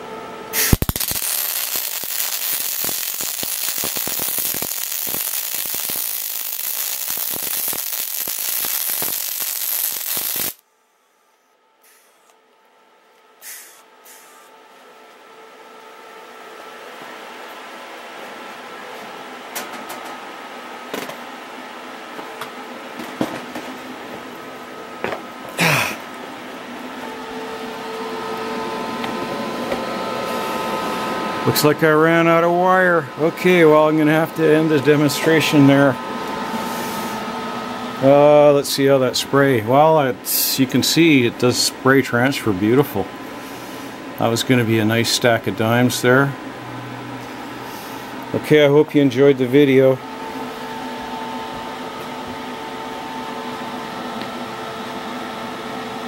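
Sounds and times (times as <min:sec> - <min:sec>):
welding arc hissing and crackling: 0:00.5 - 0:10.6, 0:38.0 - 0:43.4.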